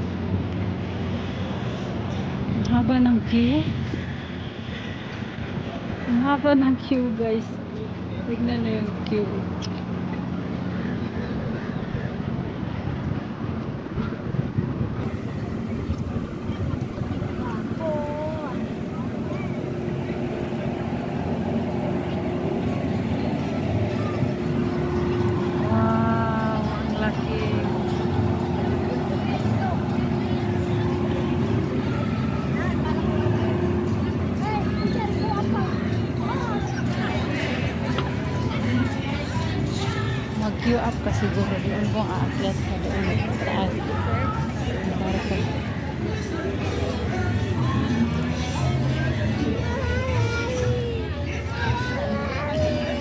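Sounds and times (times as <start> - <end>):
constant hum: 0.0 - 53.0
steady low rumble: 12.0 - 46.6
people talking nearby: 15.0 - 53.0.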